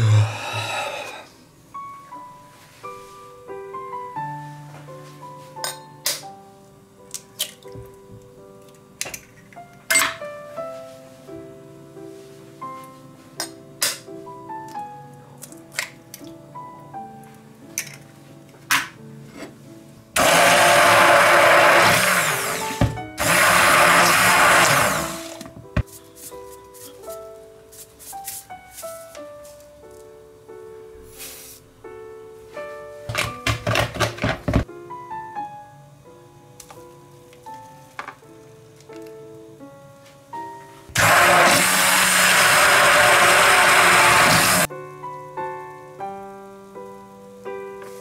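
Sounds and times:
immersion blender whisking eggs: 0:20.2 - 0:25.4, 0:41.0 - 0:44.7.

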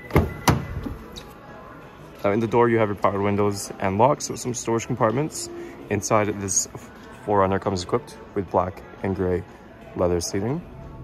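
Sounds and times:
car door unlocking clunk: 0:00.0 - 0:01.0.

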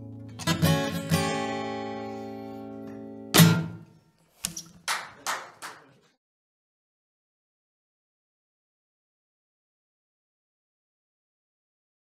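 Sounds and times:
guitar chord ringing: 0:00.0 - 0:03.8
hand claps: 0:04.4 - 0:06.0.

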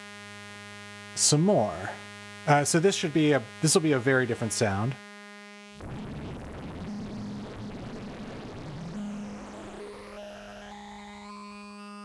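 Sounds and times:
phased synthesizer buzzing tone: 0:00.0 - 0:12.0.

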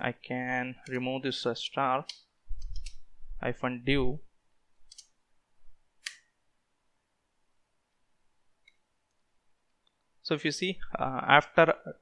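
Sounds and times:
computer mouse or keyboard clicks: 0:02.1 - 0:03.0, 0:04.9 - 0:05.1.

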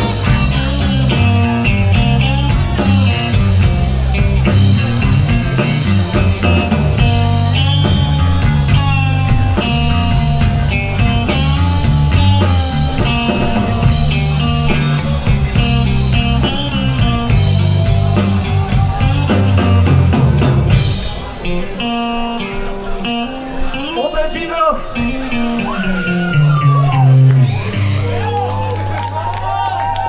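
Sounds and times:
drum kit: 0:00.0 - 0:22.8
bass guitar: 0:00.0 - 0:24.0, 0:24.8 - 0:30.0
electric guitar: 0:00.0 - 0:30.0.

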